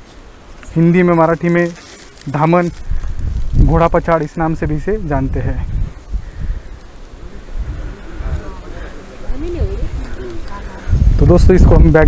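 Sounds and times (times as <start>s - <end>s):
faint murmuring voices: 6.1s - 11.5s.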